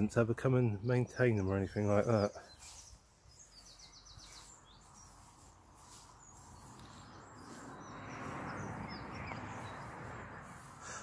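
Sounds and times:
road traffic passing: 0:00.0 - 0:11.0
small birds chirping: 0:00.0 - 0:11.0.

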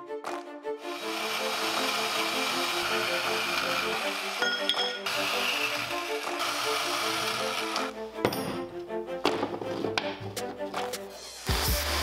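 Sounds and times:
plucked background music: 0:00.0 - 0:12.0
band saw cutting metal: 0:00.8 - 0:08.0.

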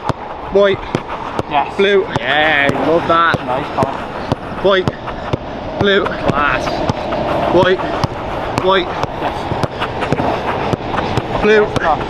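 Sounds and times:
football thuds: 0:04.3 - 0:12.0.

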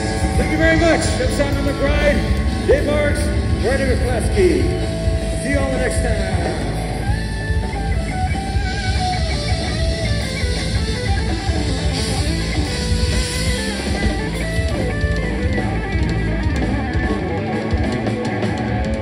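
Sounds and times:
bass guitar: 0:00.0 - 0:19.0
drum kit with cymbals: 0:00.0 - 0:19.0
electric guitar lead: 0:00.0 - 0:19.0.

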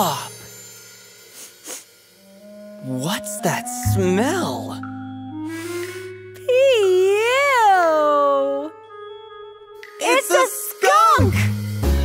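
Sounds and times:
person sniffing: 0:01.3 - 0:01.9
soft background music: 0:02.1 - 0:12.0.

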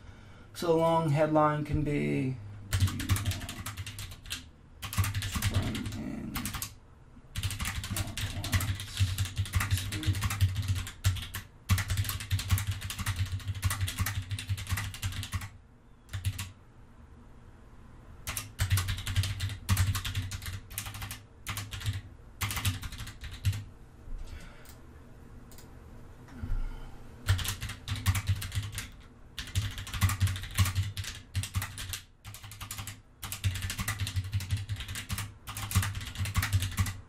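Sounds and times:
typing on computer keyboard: 0:02.7 - 0:06.8, 0:07.4 - 0:16.5, 0:18.2 - 0:23.6, 0:27.3 - 0:37.0.

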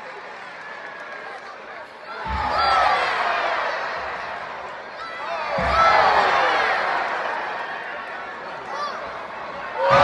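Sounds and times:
arena crowd cheering: 0:00.0 - 0:10.0.

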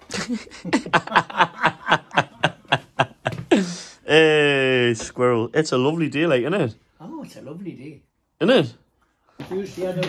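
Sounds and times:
man laughing heartily: 0:00.0 - 0:04.0.

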